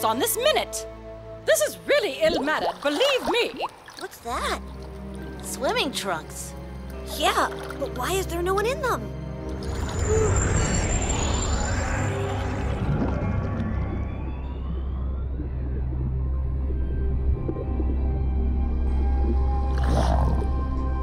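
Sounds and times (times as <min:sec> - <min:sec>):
deep steady drone: 0:09.0 - 0:21.0
faint rising glide: 0:09.5 - 0:20.8
whale-like calls: 0:09.5 - 0:21.0.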